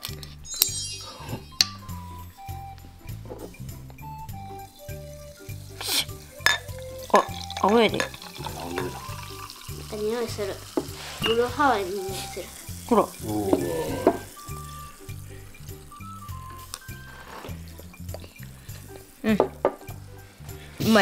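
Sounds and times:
background music with steady beat: 0.0 - 21.0
fizzing hiss of bubbles: 3.5 - 21.0
soft drink pouring into cup: 5.3 - 18.4.

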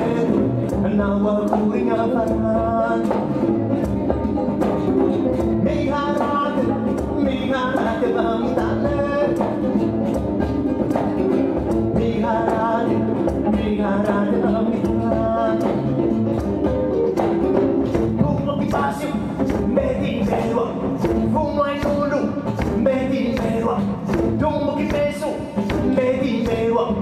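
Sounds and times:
acoustic guitar plucked: 0.0 - 27.0
person singing: 0.0 - 27.0.

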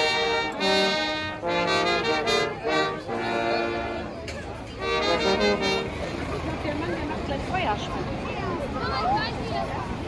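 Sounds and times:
brass group playing chords: 0.0 - 4.2, 4.8 - 6.4
street crowd chatter: 0.0 - 10.0.

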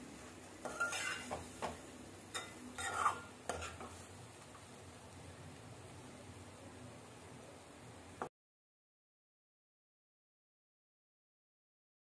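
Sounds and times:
metal spoon scraping a pan: 0.6 - 4.1.

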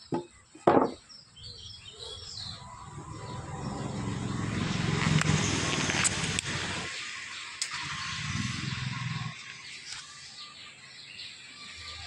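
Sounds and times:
bird chirps: 0.0 - 5.6, 6.9 - 12.0
vehicle engine rumble approaching: 2.1 - 10.0.

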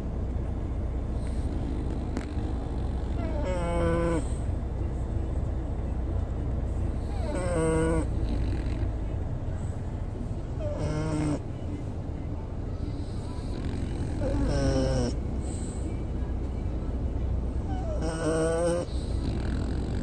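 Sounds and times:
steady low rumble: 0.0 - 10.8, 11.4 - 18.0
dog snoring: 1.1 - 4.5, 6.9 - 9.1, 10.6 - 11.5, 12.9 - 15.8, 17.6 - 20.0.

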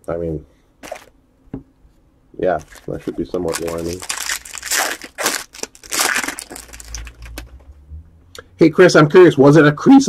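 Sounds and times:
foil wrapper crinkling: 2.5 - 7.4.

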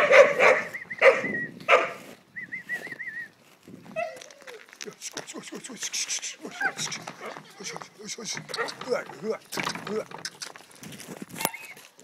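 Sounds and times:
dog barking: 0.0 - 2.0.

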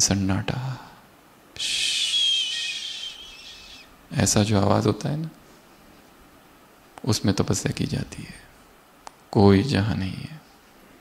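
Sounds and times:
man making hissing whistle: 1.6 - 4.0.

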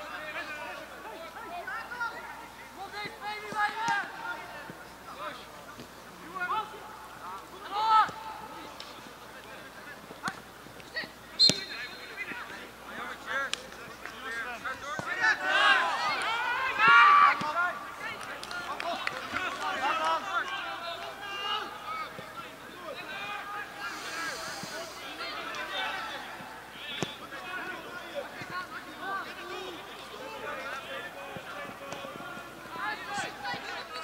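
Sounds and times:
players and spectators shouting: 14.3 - 34.0.

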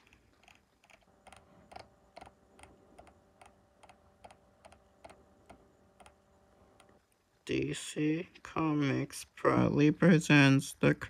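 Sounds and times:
computer clicking: 0.0 - 7.0.

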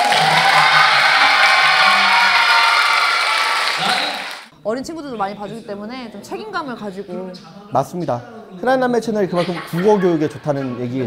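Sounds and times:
audience applause and cheering: 0.0 - 4.5.

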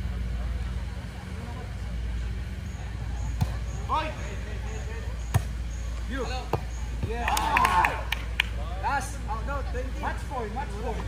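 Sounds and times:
volleyball being hit: 5.3 - 5.6.

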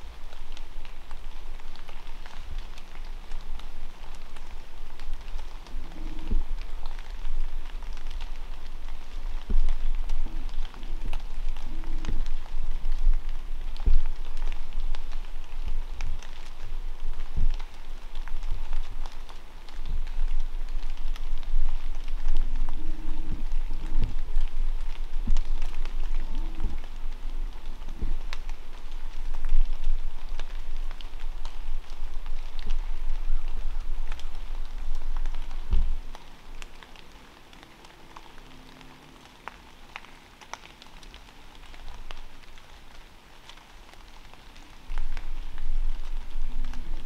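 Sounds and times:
low steady rumble: 0.0 - 39.8, 44.7 - 47.0
water drops pattering on dry leaves: 0.0 - 47.0.

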